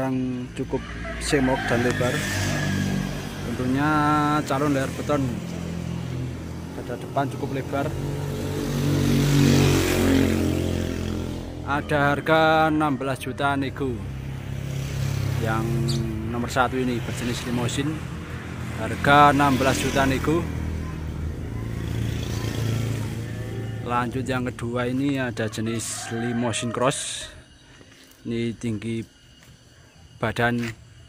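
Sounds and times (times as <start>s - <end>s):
vehicle engine running: 1.7s - 25.5s.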